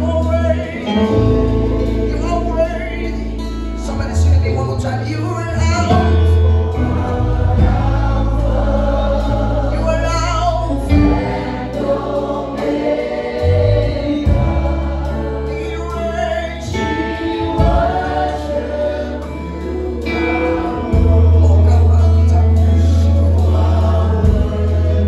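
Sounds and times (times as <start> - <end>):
voices singing together: 0.0 - 3.8, 5.9 - 25.0
gospel band playing: 0.0 - 25.0
sustained low bass notes: 0.0 - 25.0.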